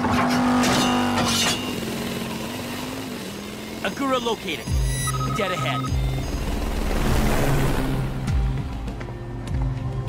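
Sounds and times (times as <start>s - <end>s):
cartoon vehicle engine hum: 0.0s - 9.6s.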